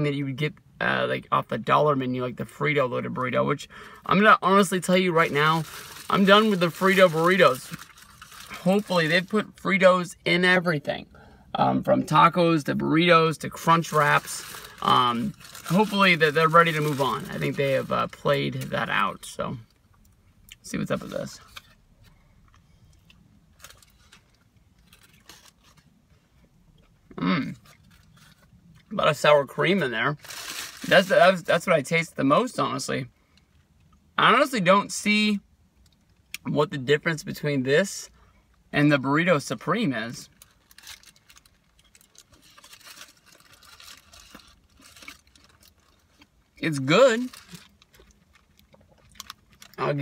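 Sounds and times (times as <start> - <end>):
crunching and chewing food: 22.4 - 29.0, 40.3 - 50.0.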